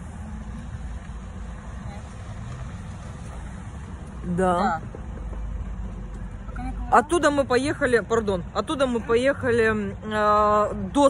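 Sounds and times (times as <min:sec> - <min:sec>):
vehicle engine idling: 0:00.0 - 0:10.6.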